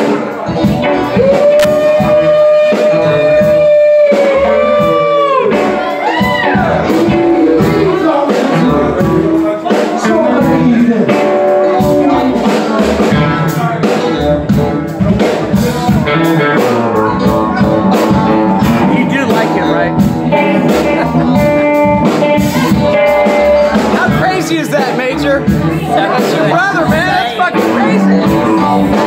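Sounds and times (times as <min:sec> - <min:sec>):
live blues band playing: 0:00.0 - 0:29.0.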